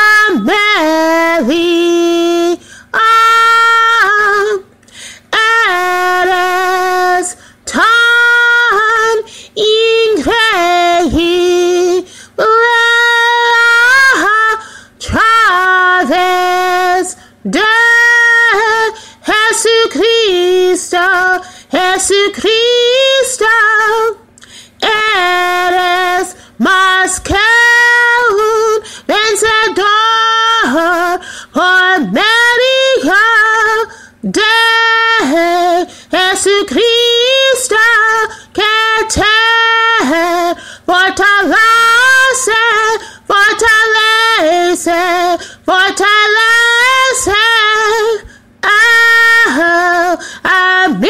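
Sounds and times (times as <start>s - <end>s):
woman singing unaccompanied: 0.0s - 51.0s.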